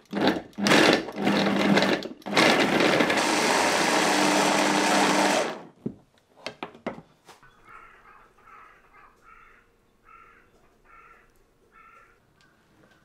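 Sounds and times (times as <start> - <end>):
food processor motor chopping: 0.0 - 5.8.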